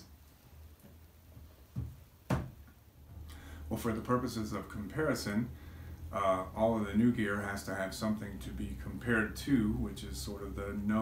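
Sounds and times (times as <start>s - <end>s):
faint low hum: 0.0s - 11.0s
knocks: 1.8s - 2.7s.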